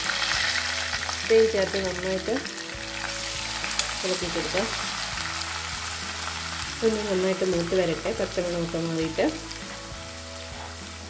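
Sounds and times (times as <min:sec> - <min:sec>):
oil sizzling in a wok: 0:00.0 - 0:11.0.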